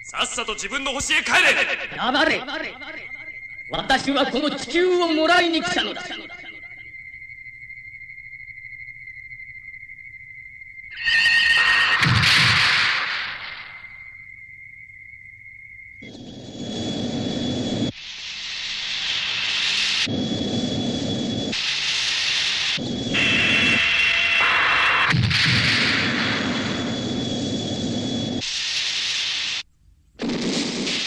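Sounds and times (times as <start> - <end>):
high whine: 0.0 - 29.7.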